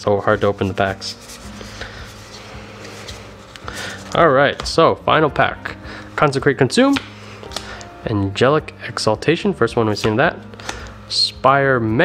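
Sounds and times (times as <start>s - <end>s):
faint background music: 0.0s - 12.0s
trading cards rustling: 0.3s - 4.8s.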